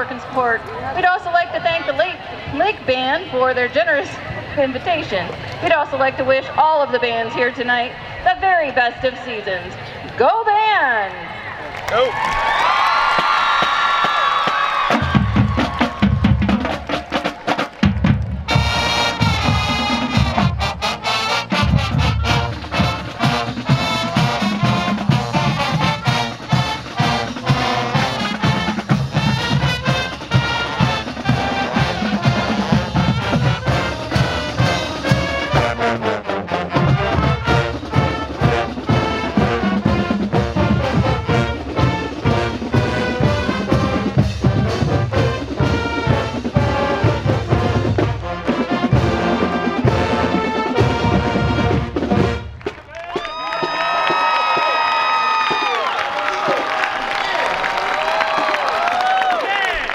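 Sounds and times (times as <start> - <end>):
drumline beat: 12.6 - 59.9
marching band playing brass march: 13.3 - 59.9.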